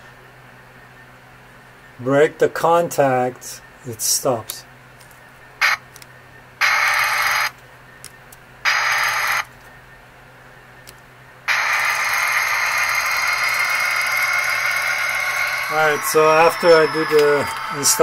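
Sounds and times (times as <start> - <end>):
model locomotive motor whirring: 6.6 - 7.5, 8.7 - 9.4, 11.5 - 18.0.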